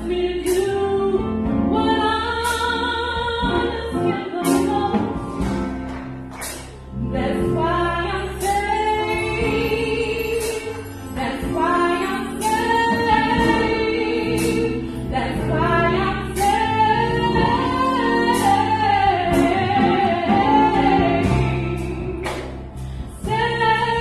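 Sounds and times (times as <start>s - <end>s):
women's gospel group singing: 7.0s - 24.0s.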